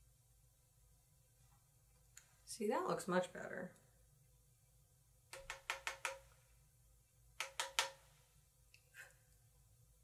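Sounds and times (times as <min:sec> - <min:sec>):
makeup brush tapping on palette: 0:05.3 - 0:06.3, 0:07.4 - 0:08.1.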